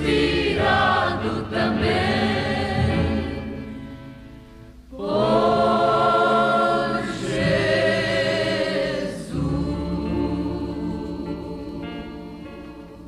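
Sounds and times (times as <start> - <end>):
choir singing a hymn: 0.0 - 13.0.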